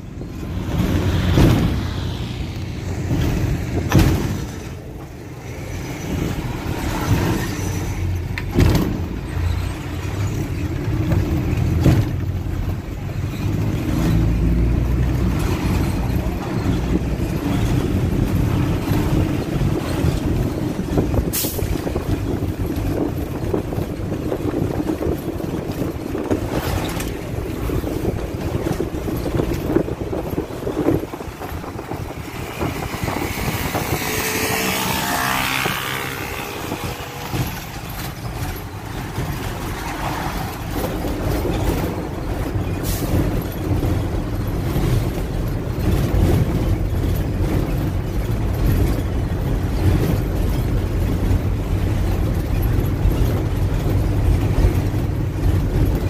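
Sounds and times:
bus body knocks and rattles: 0.0s - 34.0s, 35.2s - 56.0s
bus engine and road noise: 0.0s - 56.0s.

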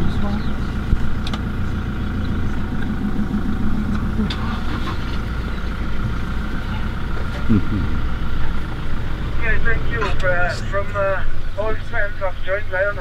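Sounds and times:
vehicle engine idling: 0.0s - 13.0s.

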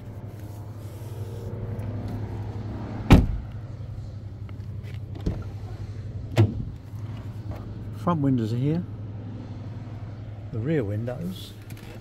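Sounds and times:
car door shutting: 3.0s - 3.5s, 5.1s - 5.6s, 6.3s - 6.8s.

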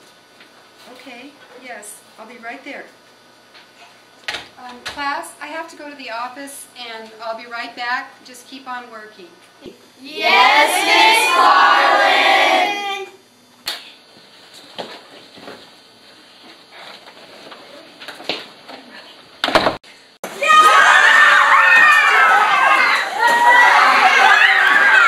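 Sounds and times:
children shouting and screaming: 20.3s - 25.0s.

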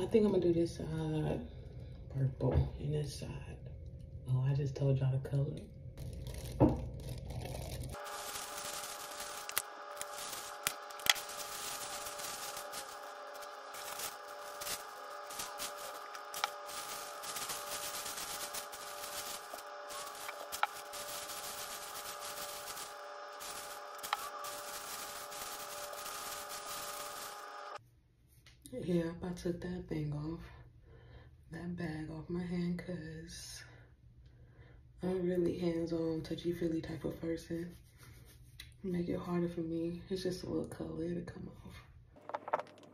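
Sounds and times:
steady multi-tone hum: 5.6s - 27.8s
plastic bag scrunching through hair: 6.0s - 27.8s.

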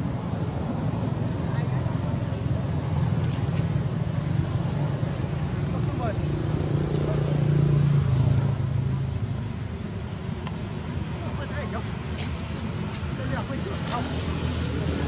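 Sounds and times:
outdoor background noise: 0.0s - 15.0s
high gliding squeaks: 12.4s - 13.0s.

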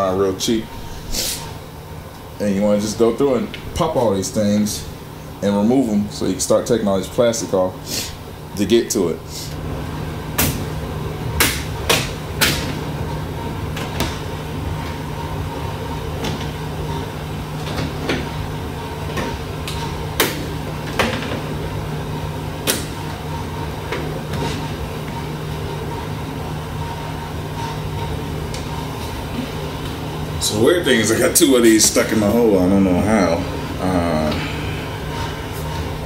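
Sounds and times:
steady low hum: 0.0s - 36.0s.

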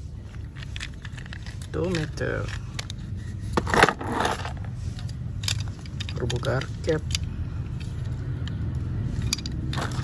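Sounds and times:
low steady rumble: 0.0s - 10.0s
plastic toy cars clicking: 0.2s - 3.0s, 3.6s - 10.0s.

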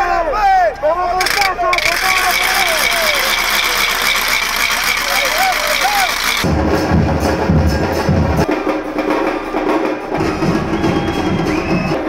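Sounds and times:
crowd shouting and cheering: 0.0s - 6.5s, 10.2s - 12.0s
drums beaten in rhythm: 1.2s - 12.0s.

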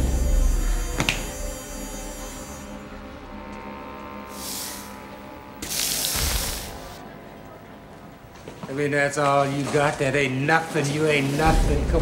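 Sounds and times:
low humming drone: 0.0s - 7.9s.

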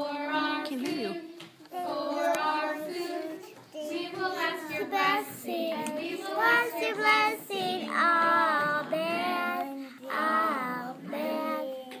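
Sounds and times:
girl singing: 0.0s - 12.0s.

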